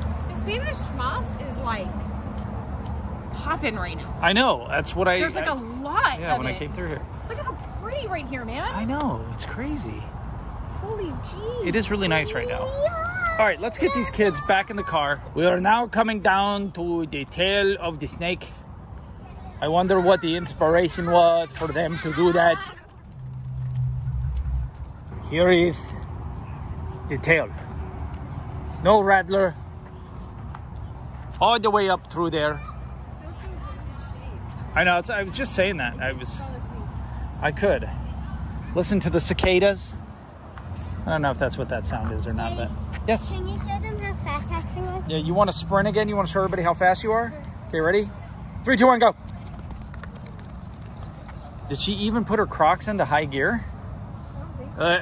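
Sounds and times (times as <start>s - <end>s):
motor vehicle engine rumble: 22.8s - 31.4s.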